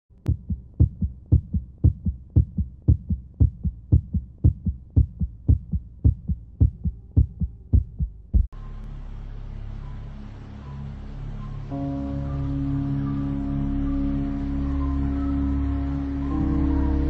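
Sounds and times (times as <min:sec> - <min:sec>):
heartbeat double thumps: 0:00.2 - 0:08.6
faint hum: 0:00.2 - 0:17.0.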